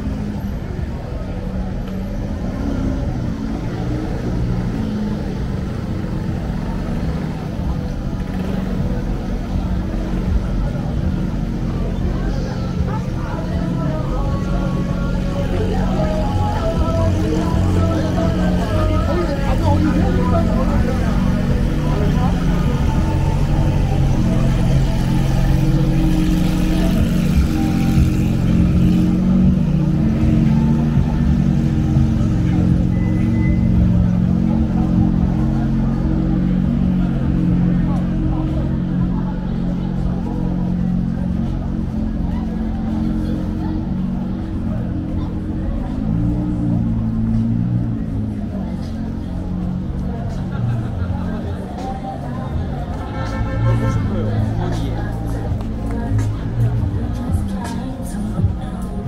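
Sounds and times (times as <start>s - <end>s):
car engines running: 0.0s - 59.0s
passers-by chatter: 0.0s - 59.0s
music: 8.2s - 39.6s, 51.4s - 59.0s.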